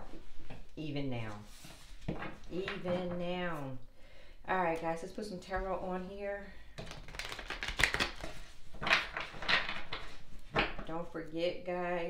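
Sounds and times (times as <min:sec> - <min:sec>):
cards being shuffled: 0:06.8 - 0:10.9.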